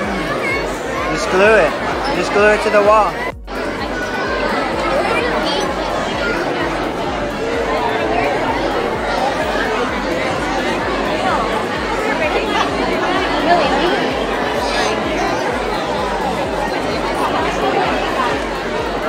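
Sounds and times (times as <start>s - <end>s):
babble of overlapping voices: 0.0s - 19.0s.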